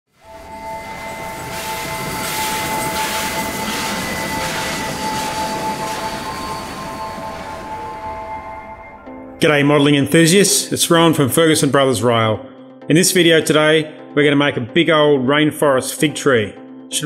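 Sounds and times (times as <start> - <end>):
hissing crackling swell: 0.2 - 9.4
held chord of tones: 0.2 - 14.4.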